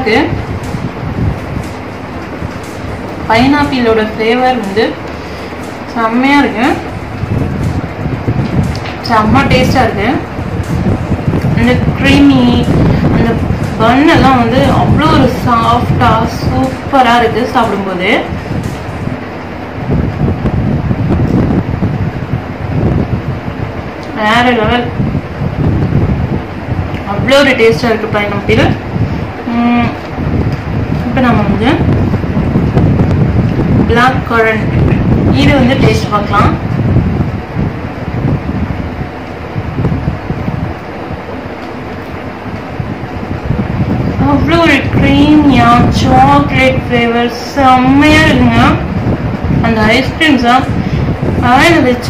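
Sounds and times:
rushing air noise: 0.0s - 52.0s
wind buffeting microphone: 0.0s - 52.0s.

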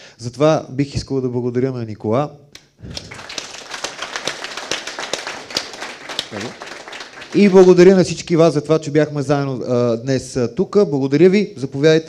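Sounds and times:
audience clapping: 2.8s - 8.3s.

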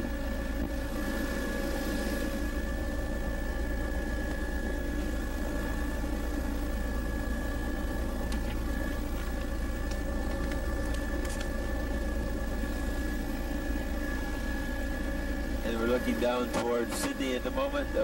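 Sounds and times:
aircraft engine drone: 0.0s - 18.0s.

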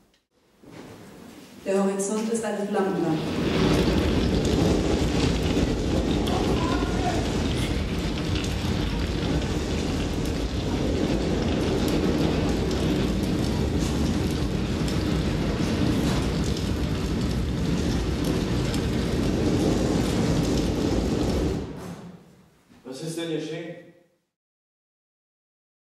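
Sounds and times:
dense rumbling wash of noise: 2.6s - 22.0s.

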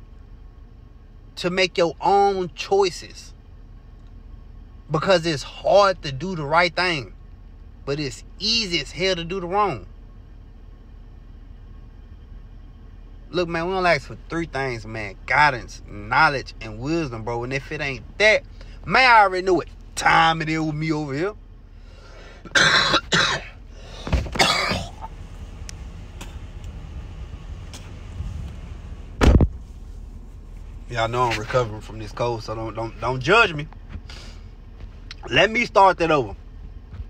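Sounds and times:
car interior rumble: 0.0s - 37.0s.

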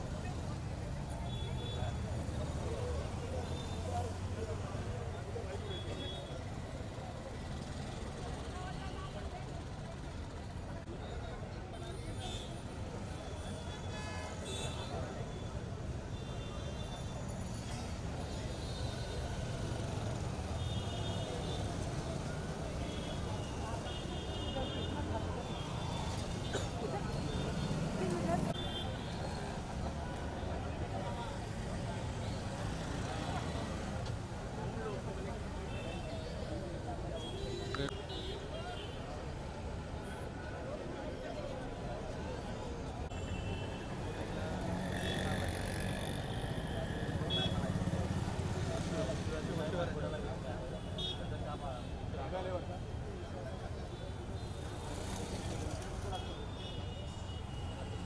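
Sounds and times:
crowd voices: 0.0s - 58.0s
road traffic rumble: 0.0s - 58.0s.

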